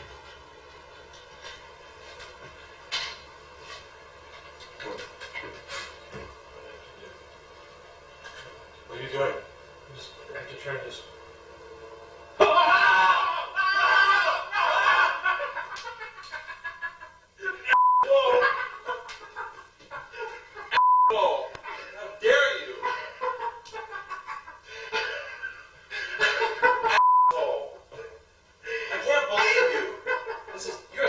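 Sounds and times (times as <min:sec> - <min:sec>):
men yelling and laughing: 0:12.3 - 0:20.8, 0:21.5 - 0:27.0, 0:27.9 - 0:31.0
short steady censor beeps: 0:17.8 - 0:18.1, 0:20.8 - 0:21.2, 0:27.0 - 0:27.4.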